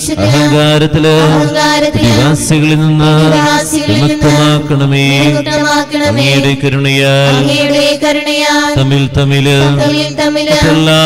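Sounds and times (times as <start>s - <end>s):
man singing liturgical chant: 0.0s - 11.0s.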